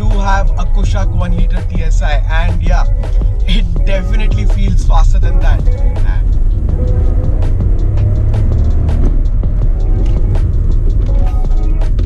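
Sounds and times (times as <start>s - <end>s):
hip-hop music: 0.0s - 12.0s
turbo car engine accelerating: 0.0s - 12.0s.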